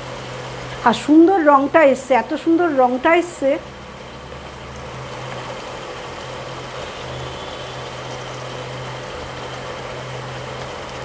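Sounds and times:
curry simmering in a pot: 0:00.0 - 0:11.0
even hiss: 0:00.0 - 0:11.0.

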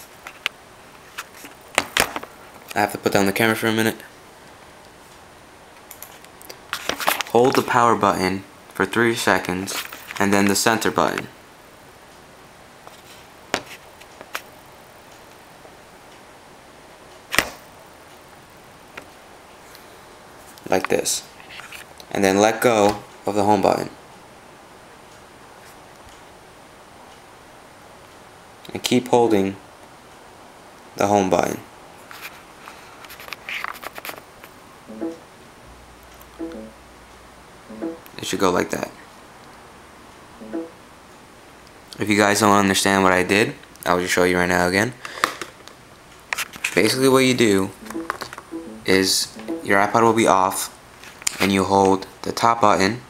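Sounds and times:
short musical notes: 0:34.9 - 0:35.3, 0:36.4 - 0:36.8, 0:37.7 - 0:38.1, 0:40.4 - 0:40.8, 0:47.8 - 0:49.9
device button clicks and rustling: 0:47.8 - 0:48.6.

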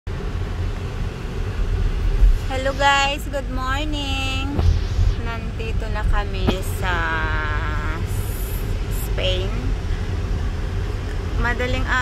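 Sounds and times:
car engine and road rumble: 0:00.1 - 0:12.0.

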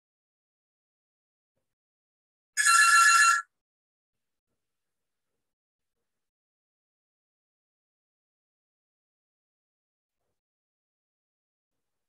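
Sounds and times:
electronic ring with trill: 0:02.6 - 0:03.5.

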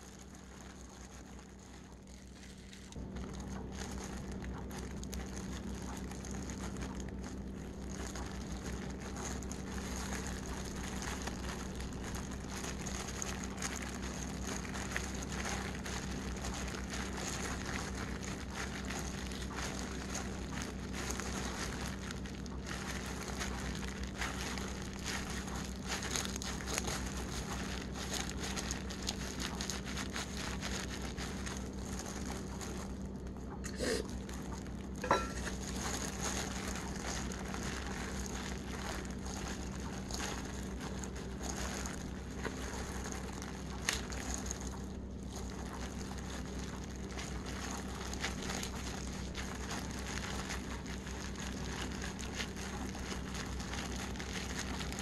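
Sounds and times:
fine crackling: 0:00.0 - 0:33.4, 0:34.0 - 0:55.0
plastic gloves crinkling: 0:00.0 - 0:55.0
steady low hum: 0:00.0 - 0:55.0.

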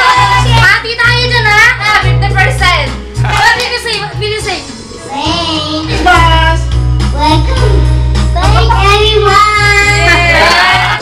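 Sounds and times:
backing music with heavy bass: 0:00.0 - 0:11.0
child singing into microphone: 0:08.4 - 0:10.2.

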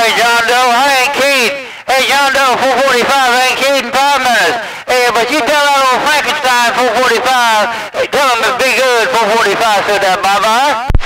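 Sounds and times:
man talking over radio speaker: 0:00.0 - 0:11.0.

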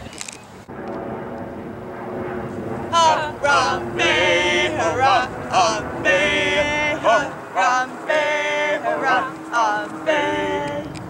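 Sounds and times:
young voices singing long note: 0:02.9 - 0:11.0.

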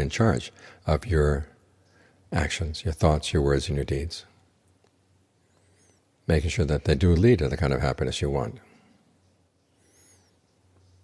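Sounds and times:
faint high-pitched chirping: 0:08.6 - 0:11.0.

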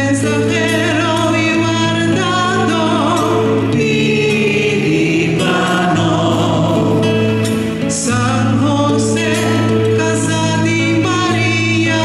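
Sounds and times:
acoustic guitar: 0:00.0 - 0:12.0
person singing with vibrato: 0:00.0 - 0:12.0.

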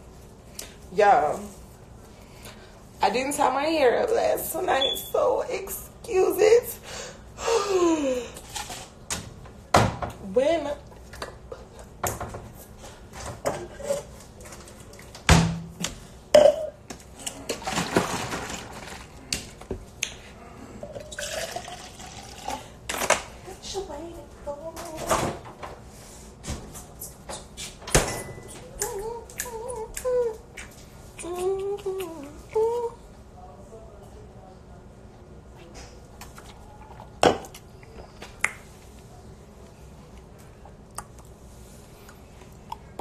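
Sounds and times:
liquid pouring and sloshing: 0:17.2 - 0:19.3, 0:20.9 - 0:22.6.

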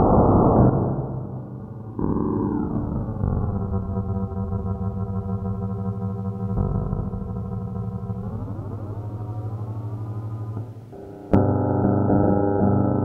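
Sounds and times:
dull electric guitar notes: 0:00.8 - 0:13.0.

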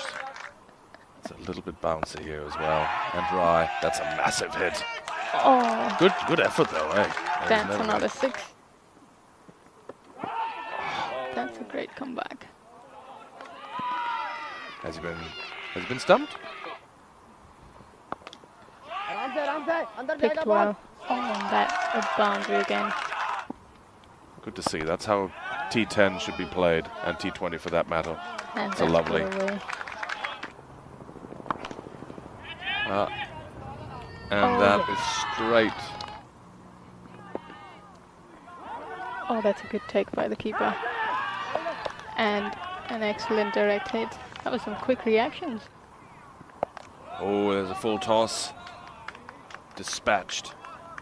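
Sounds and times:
fielders shouting appeal: 0:02.4 - 0:08.4, 0:10.2 - 0:11.8, 0:12.7 - 0:16.8, 0:18.7 - 0:23.5, 0:25.1 - 0:30.5, 0:32.4 - 0:45.5.

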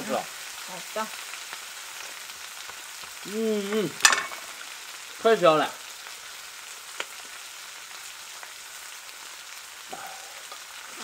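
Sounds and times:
meat sizzling in oil: 0:00.0 - 0:11.0.

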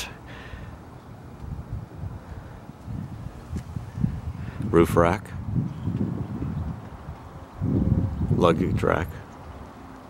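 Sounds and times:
wind buffeting microphone: 0:01.4 - 0:09.8.

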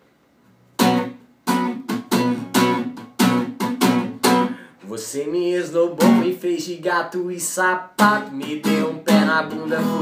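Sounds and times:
acoustic guitar strumming: 0:00.8 - 0:10.0.

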